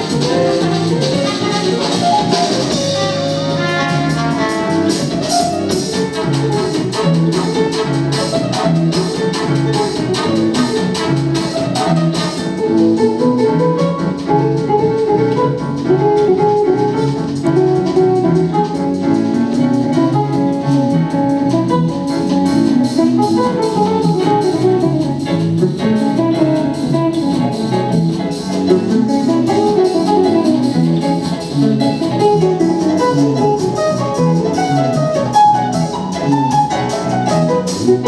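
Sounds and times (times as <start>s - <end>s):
brass instruments: 0.0s - 14.2s
jazz band instrumental: 0.0s - 38.0s.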